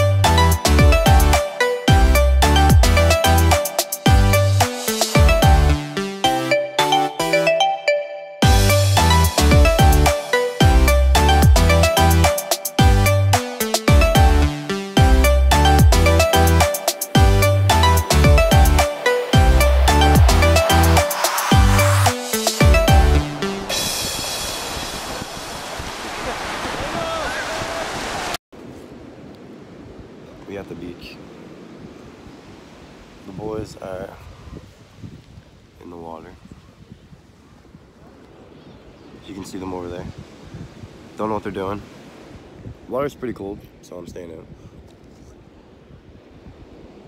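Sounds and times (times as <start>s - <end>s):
music track: 0.0s - 25.5s
ocean surf breaking: 0.5s - 7.7s, 13.4s - 34.2s, 39.4s - 43.0s
wind on microphone: 17.2s - 30.4s, 31.5s - 41.2s, 41.8s - 47.0s.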